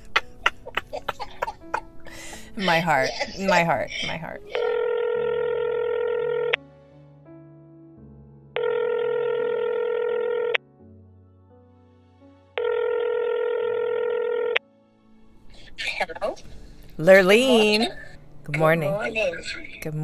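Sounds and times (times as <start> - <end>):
soft background music: 0.0 - 20.0
telephone ringback tone: 4.5 - 6.6, 8.6 - 10.6, 12.6 - 14.6.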